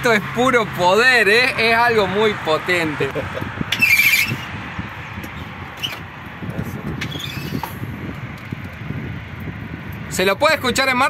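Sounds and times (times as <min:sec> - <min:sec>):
low rumbling: 0:00.0 - 0:10.4
high-pitched squeak: 0:03.7 - 0:04.5, 0:05.8 - 0:06.0, 0:07.0 - 0:07.8.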